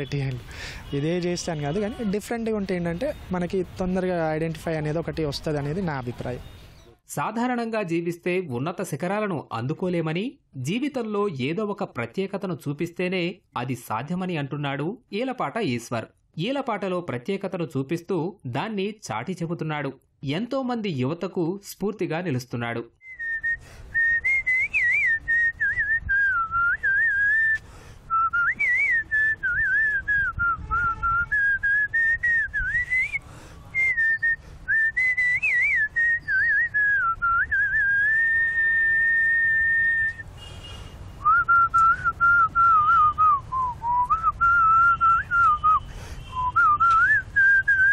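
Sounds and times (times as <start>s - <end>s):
man whistling a tune: 23.0s - 40.3s, 41.2s - 47.9s.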